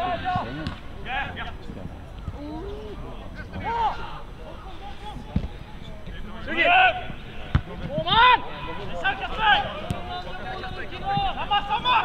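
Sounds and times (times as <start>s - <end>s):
players shouting: 0.0s - 1.5s, 2.9s - 5.3s, 6.2s - 12.0s
football kick thuds: 7.5s - 8.0s.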